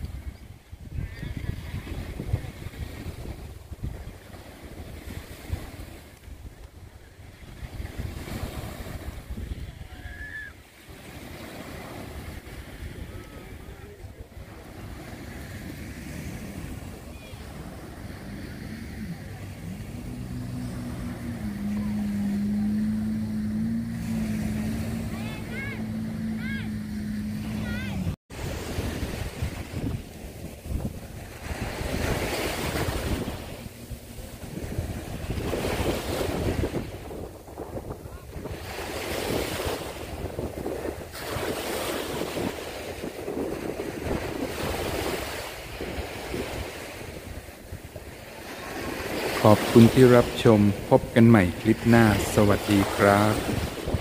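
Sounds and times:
sea waves on sandy beach: 0:00.0 - 0:54.0
low motor hum: 0:14.5 - 0:28.2, 0:31.1 - 0:36.8.

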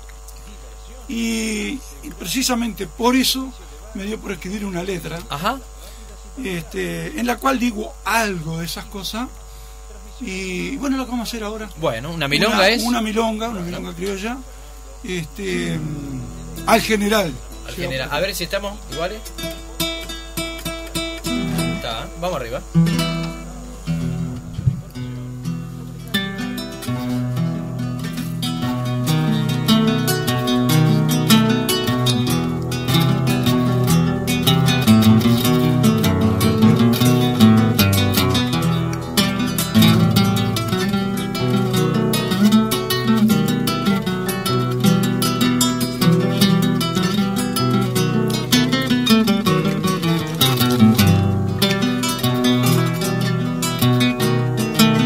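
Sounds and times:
acoustic guitar plucked and strummed: 0:15.3 - 0:55.0.

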